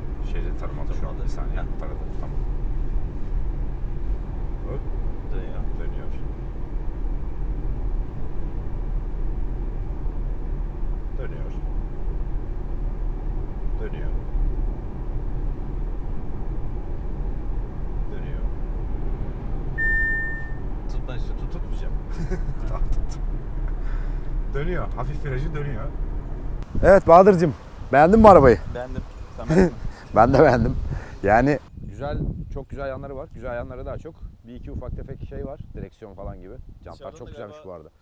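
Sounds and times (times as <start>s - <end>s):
car engine hum: 0.0s - 31.7s
road and tyre rumble: 0.0s - 38.0s
short electronic chime: 19.8s - 20.6s.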